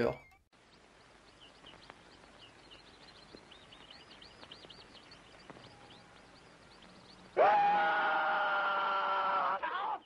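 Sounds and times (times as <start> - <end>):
man's loud long yell: 7.4 - 10.0.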